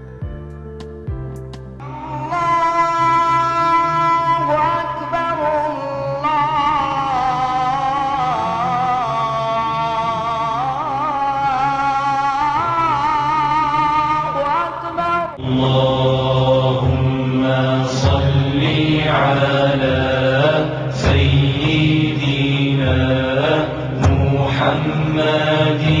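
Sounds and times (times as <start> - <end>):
chant-like sung vocal: 1.8 - 26.0
low drone: 1.8 - 26.0.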